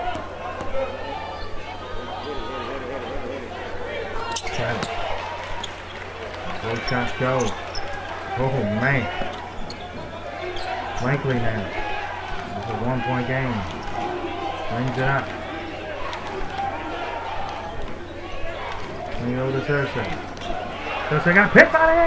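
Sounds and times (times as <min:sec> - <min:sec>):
crowd hubbub: 0:00.0 - 0:22.0
voices calling out loudly: 0:00.0 - 0:22.0.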